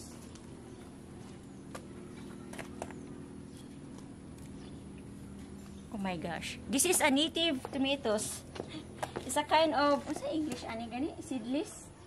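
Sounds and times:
steady low hum: 0.0s - 12.0s
clicks and snaps of tomato plants: 3.9s - 4.6s.

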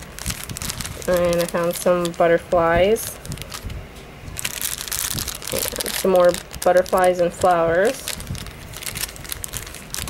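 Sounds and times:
plastic packets crinkling: 0.0s - 10.0s.

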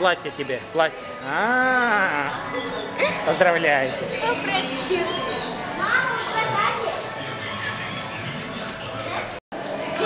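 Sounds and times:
young children's voices: 4.2s - 7.8s
high-pitched calls: 4.6s - 6.0s, 7.2s - 8.7s.

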